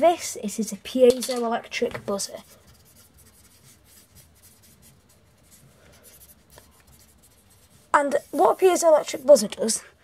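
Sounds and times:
pen scratching on paper: 0:02.4 - 0:09.4.

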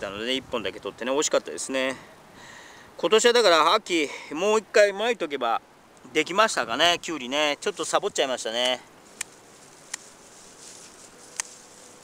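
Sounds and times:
field insects hissing: 0:06.8 - 0:12.0
scissors snipping stalks: 0:08.1 - 0:10.2, 0:10.8 - 0:11.9.

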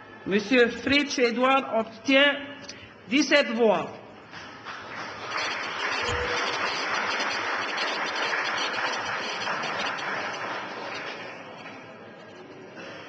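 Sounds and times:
crowd applause in a hall: 0:04.3 - 0:12.0.

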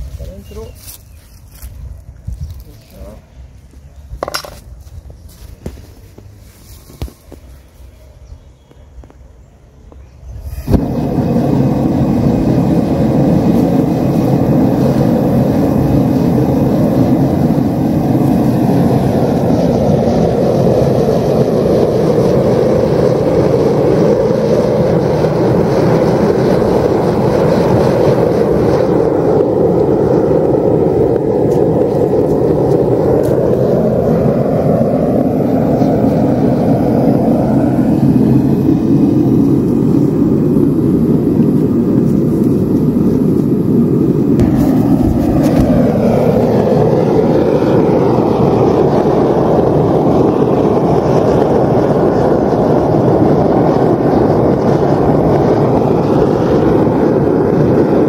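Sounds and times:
gas burner roaring: 0:00.0 - 0:58.0.

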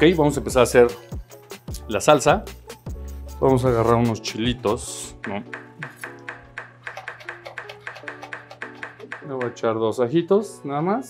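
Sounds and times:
background music: 0:00.0 - 0:11.0
knife chopping on wooden board: 0:06.9 - 0:09.6.

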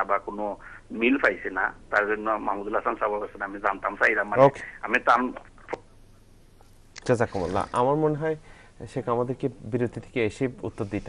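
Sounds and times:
person talking: 0:07.0 - 0:08.2.

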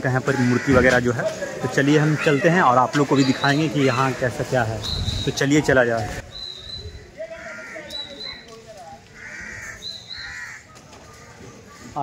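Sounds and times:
bird calling: 0:03.1 - 0:05.5, 0:06.2 - 0:12.0.

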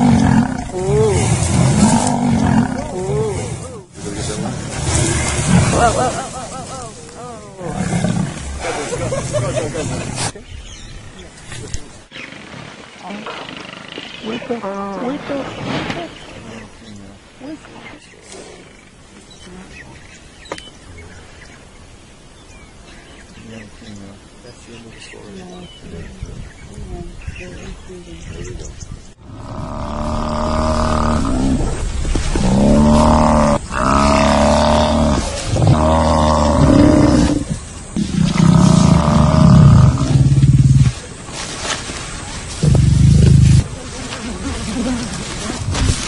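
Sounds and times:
animals growling and grunting: 0:00.0 - 0:10.4, 0:27.5 - 0:41.2, 0:42.5 - 0:46.0.

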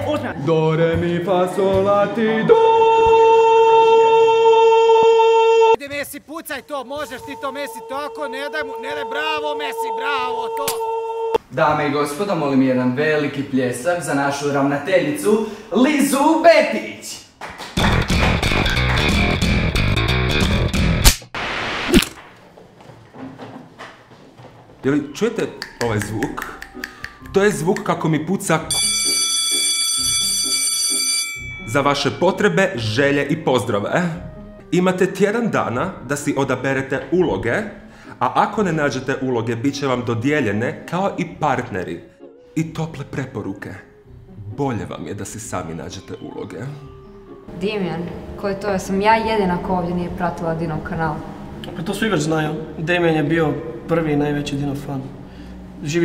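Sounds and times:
soft background music: 0:06.5 - 0:10.7, 0:24.8 - 0:56.0
man singing long high note: 0:07.1 - 0:11.4.

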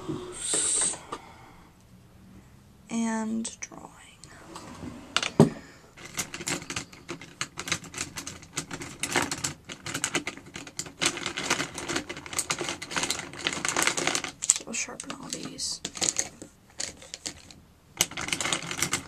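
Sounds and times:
wooden pencils clattering together: 0:05.2 - 0:19.0.

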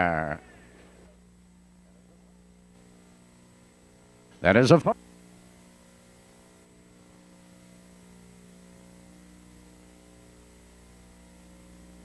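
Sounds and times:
faint electrical mains hum: 0:00.0 - 0:12.0
low hiss: 0:00.0 - 0:12.0.

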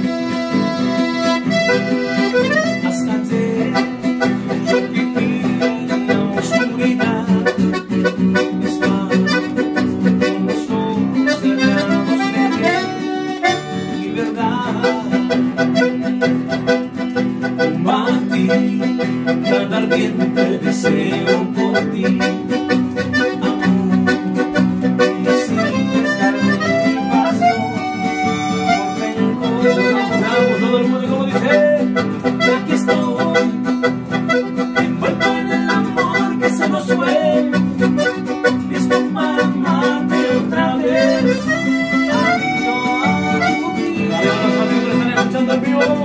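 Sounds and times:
accordion playing chords: 0:00.0 - 0:46.0
acoustic guitar: 0:00.0 - 0:46.0
bass guitar: 0:00.0 - 0:46.0.

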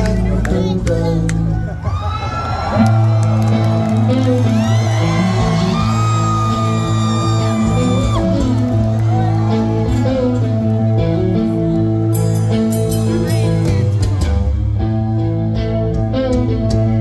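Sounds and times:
electric bass low notes: 0:00.0 - 0:01.8, 0:02.7 - 0:17.0
rock band playing live: 0:00.0 - 0:17.0
crowd whooping: 0:01.5 - 0:14.4
electric guitar bending notes: 0:02.8 - 0:17.0.

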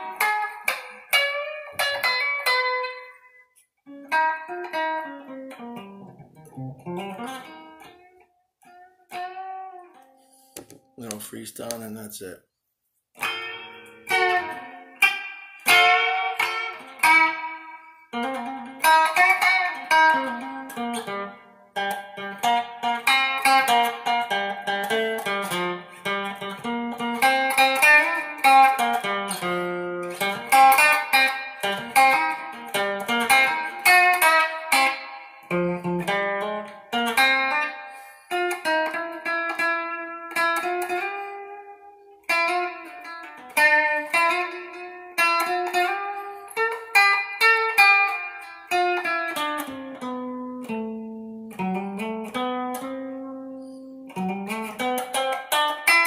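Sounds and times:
electric guitar playing: 0:00.0 - 0:12.3, 0:13.1 - 0:56.0.

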